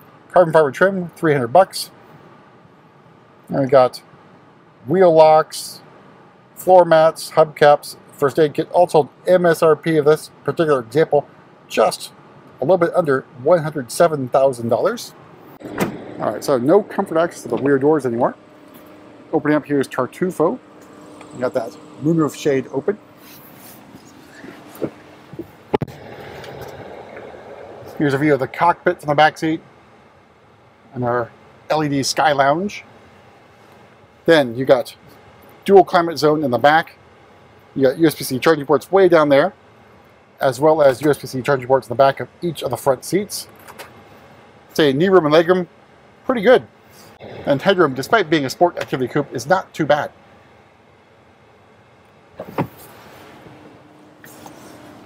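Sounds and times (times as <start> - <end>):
cabin hiss: 46.8 - 50.6
knocks and bumps in car: 52.4 - 52.8
car cabin hiss: 52.4 - 55.0.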